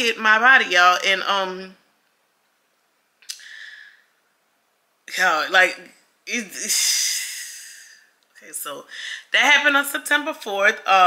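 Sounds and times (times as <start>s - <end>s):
sharp mouth click: 3.2s - 3.5s.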